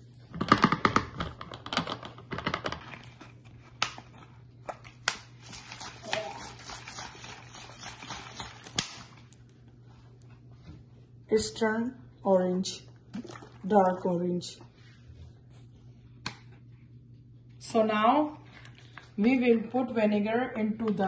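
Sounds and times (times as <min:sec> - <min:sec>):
plastic bottle being shaken: 0:05.2 - 0:09.2.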